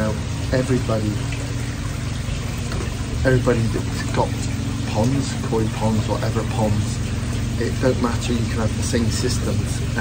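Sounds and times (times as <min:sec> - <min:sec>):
low steady hum: 0:00.0 - 0:10.0
pond water rushing: 0:00.0 - 0:10.0.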